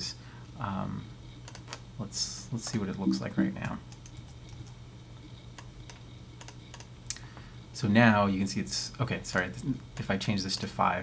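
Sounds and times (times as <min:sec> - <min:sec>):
steady low hum: 0:02.0 - 0:10.1.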